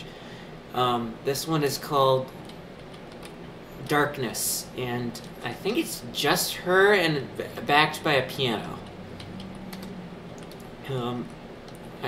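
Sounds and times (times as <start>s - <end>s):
computer keys clicking: 2.3s - 3.4s, 8.8s - 11.9s.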